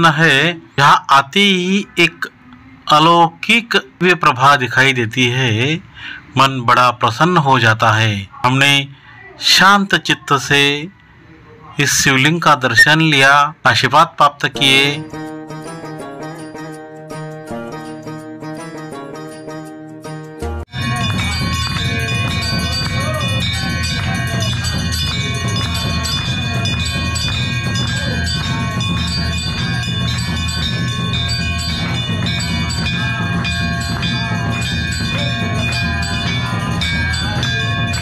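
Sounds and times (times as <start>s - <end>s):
brass bells ringing: 14.6s - 38.0s
crowd clapping in time: 20.7s - 38.0s.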